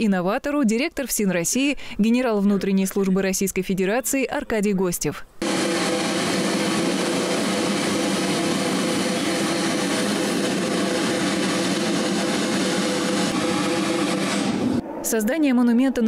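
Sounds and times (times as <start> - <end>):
snare drum roll: 5.4 - 14.8.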